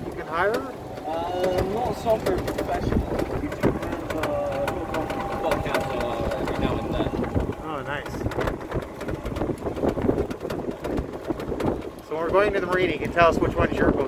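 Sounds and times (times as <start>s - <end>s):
thin steady whine: 0.0s - 12.9s
scattered knocks: 0.0s - 14.0s
wind and vehicle ride noise: 0.0s - 14.0s.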